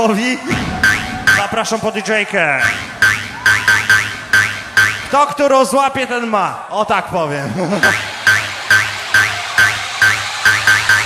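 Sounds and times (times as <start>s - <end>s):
electronic dance music: 0.0s - 6.4s, 7.8s - 11.0s
short sharp synth stabs: 0.4s - 1.6s.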